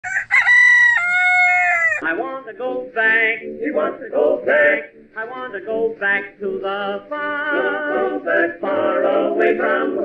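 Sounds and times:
rooster crowing: 0:00.0 - 0:02.0.

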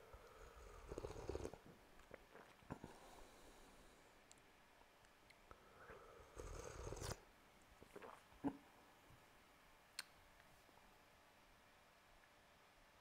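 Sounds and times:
person sipping tea: 0:00.2 - 0:03.5, 0:05.5 - 0:07.2, 0:07.8 - 0:08.7.

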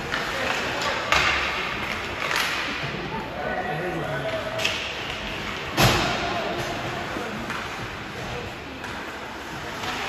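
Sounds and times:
hockey stick hitting puck: 0:00.0 - 0:02.9, 0:04.6 - 0:07.9.

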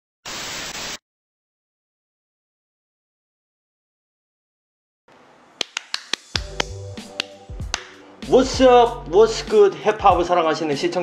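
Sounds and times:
tv static glitch: 0:00.3 - 0:01.0.

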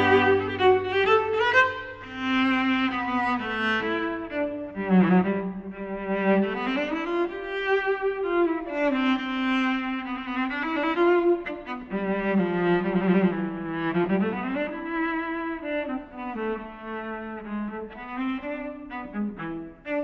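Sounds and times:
bowed cello melody: 0:00.0 - 0:20.0.

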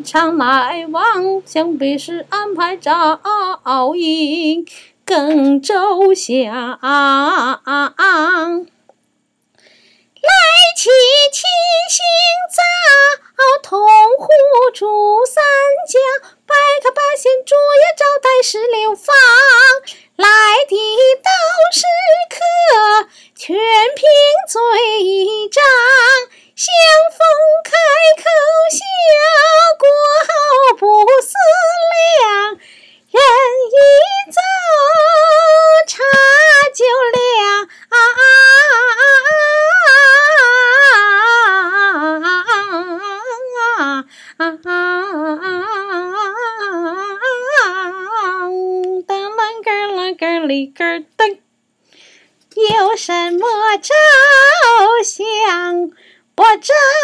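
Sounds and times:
woman singing opera unaccompanied: 0:00.0 - 0:08.7, 0:10.2 - 0:51.4, 0:52.5 - 0:57.0.

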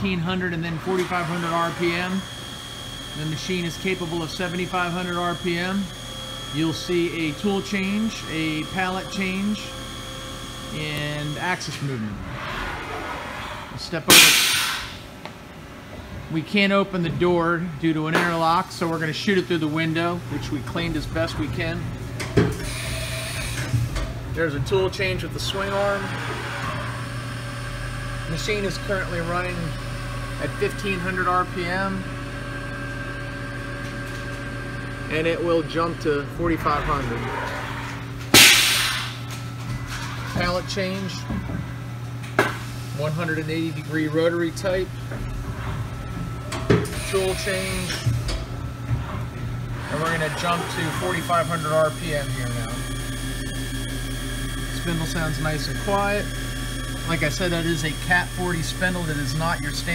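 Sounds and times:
machine low hum: 0:00.0 - 0:59.9
pneumatic hiss: 0:14.1 - 0:15.1, 0:38.3 - 0:39.3
faint steady whine: 0:35.0 - 0:59.9.

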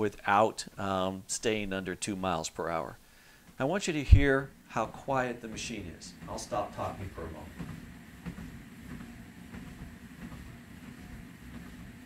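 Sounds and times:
treadmill motor hum: 0:01.6 - 0:12.0
footsteps on treadmill belt: 0:03.3 - 0:12.0.

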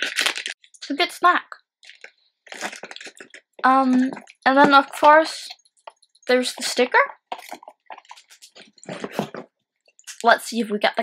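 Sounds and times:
plastic packet crinkling: 0:00.0 - 0:01.1, 0:01.8 - 0:10.2.

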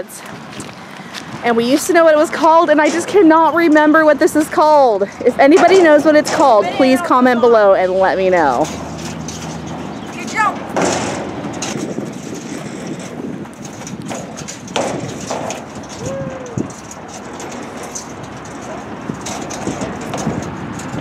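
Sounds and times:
steady outdoor rush: 0:00.0 - 0:21.0
footsteps scuffing on sandy dirt: 0:00.2 - 0:01.9.

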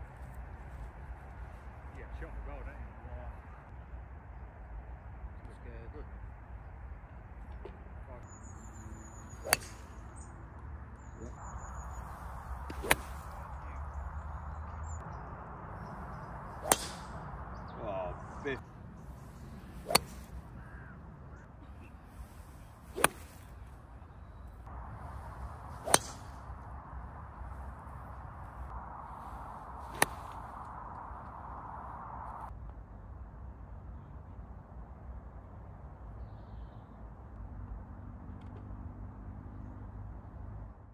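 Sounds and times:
golf club striking ball: 0:09.2 - 0:10.0, 0:12.6 - 0:13.3, 0:16.1 - 0:17.5, 0:19.8 - 0:20.9, 0:23.0 - 0:23.4, 0:25.8 - 0:26.6, 0:29.9 - 0:30.2
golf driver striking ball: 0:09.4 - 0:09.8, 0:12.7 - 0:13.2, 0:16.6 - 0:17.3, 0:19.8 - 0:20.2, 0:23.0 - 0:23.2, 0:25.8 - 0:26.3.

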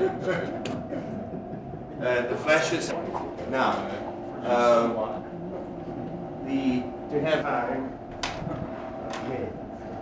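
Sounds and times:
room hum: 0:00.0 - 0:10.0.

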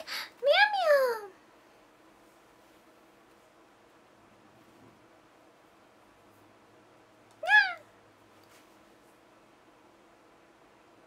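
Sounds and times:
woman imitating cat meow: 0:07.4 - 0:07.9.

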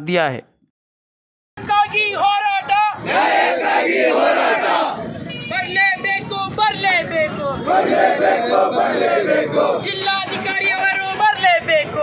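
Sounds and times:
man calling out slogan: 0:00.0 - 0:00.5
crowd of men shouting: 0:01.9 - 0:05.2, 0:07.6 - 0:11.3.

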